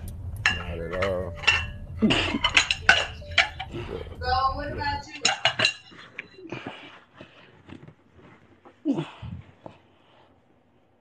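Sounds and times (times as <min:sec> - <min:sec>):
dishes and cutlery clinking: 0:00.4 - 0:04.2, 0:05.0 - 0:06.9.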